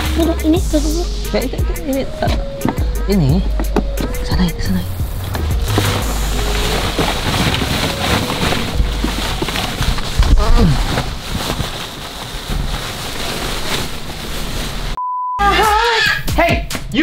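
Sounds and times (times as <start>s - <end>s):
plastic balls clattering: 5.5s - 14.9s.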